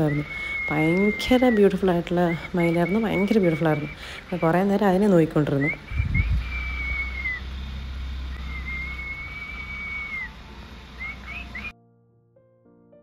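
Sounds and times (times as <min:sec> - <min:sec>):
faint piano music: 0:00.0 - 0:05.9, 0:08.4 - 0:13.0
high whistled notes: 0:00.0 - 0:11.7
low steady rumble: 0:00.0 - 0:11.7.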